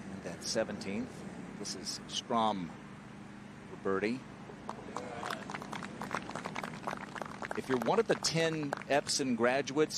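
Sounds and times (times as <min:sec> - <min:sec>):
spectators clapping: 0:04.7 - 0:09.2.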